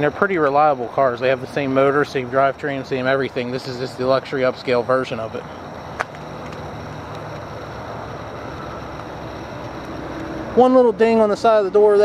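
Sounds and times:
low rumble of vehicle traffic: 0:00.0 - 0:12.0.

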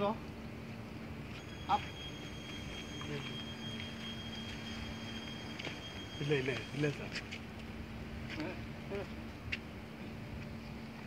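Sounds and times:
faint outdoor background: 0:00.0 - 0:11.0
steady low hum: 0:00.0 - 0:11.0
thin high-pitched whine: 0:00.8 - 0:08.0.

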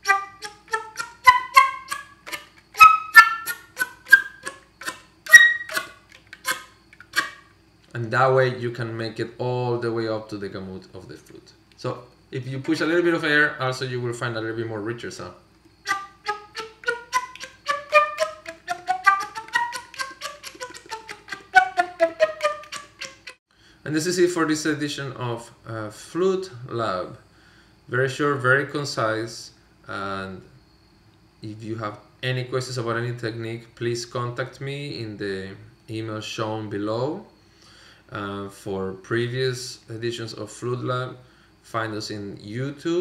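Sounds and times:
flute slap tongue notes: 0:00.0 - 0:07.3, 0:15.9 - 0:23.4.

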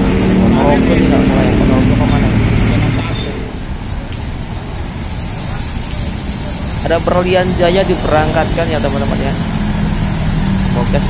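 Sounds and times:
bus diesel engine rumbling: 0:00.0 - 0:11.0.

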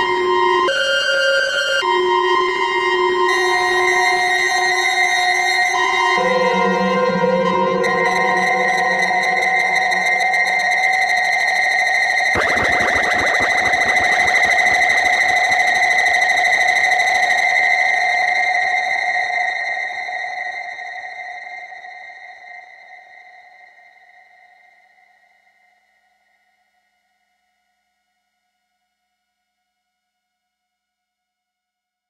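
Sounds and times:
dense rapid clicking: 0:12.4 - 0:16.1
high electronic synthesizer tones: 0:12.4 - 0:17.1.

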